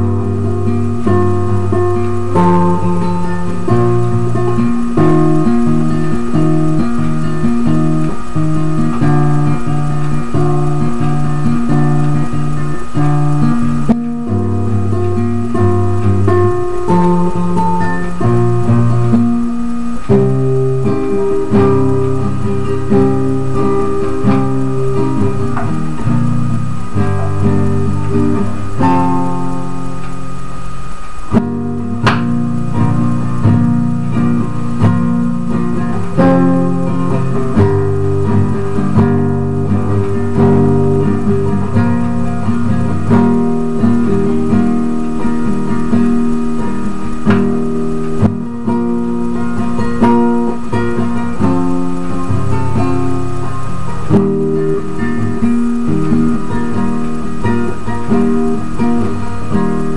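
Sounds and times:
classical guitar playing: 0:00.0 - 0:59.9.

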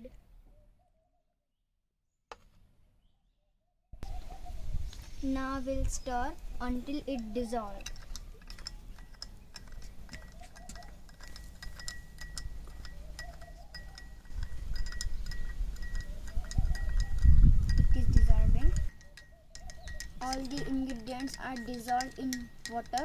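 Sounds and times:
metal spoon clinking in glass: 0:07.8 - 0:23.0.

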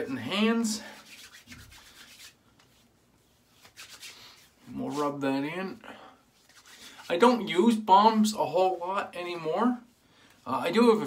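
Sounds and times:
hands rubbing: 0:00.8 - 0:05.2, 0:06.4 - 0:07.2.

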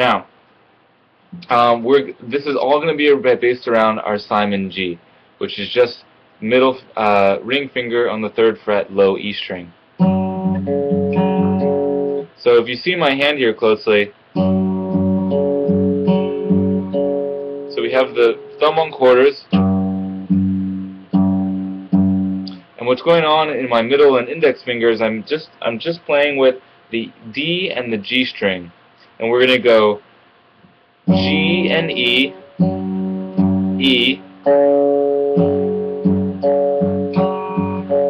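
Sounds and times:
acoustic guitar bass note plucked: 0:01.3 - 0:01.7, 0:10.0 - 0:12.2, 0:14.4 - 0:17.7, 0:19.5 - 0:22.6, 0:31.1 - 0:38.0.

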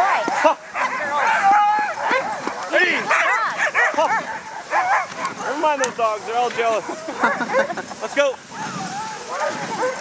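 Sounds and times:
sled dogs barking and yipping: 0:00.0 - 0:10.0.

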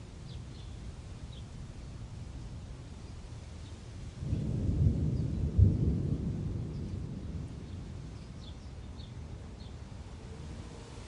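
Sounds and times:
thunder rumble: 0:04.2 - 0:08.2.

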